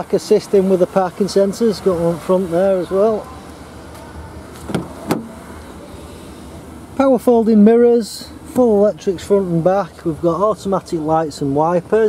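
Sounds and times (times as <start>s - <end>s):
car door latch click: 4.6s - 5.4s.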